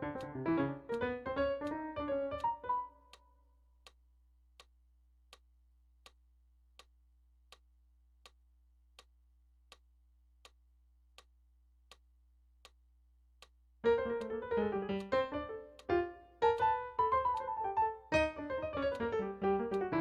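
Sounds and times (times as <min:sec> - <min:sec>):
electric piano notes: 0:00.0 - 0:02.9, 0:13.8 - 0:20.0
metronome ticking: 0:00.0 - 0:03.0, 0:13.4 - 0:20.0.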